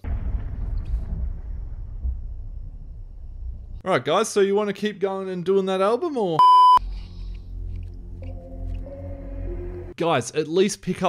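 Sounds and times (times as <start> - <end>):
deep noisy rumble: 0.0 - 3.8.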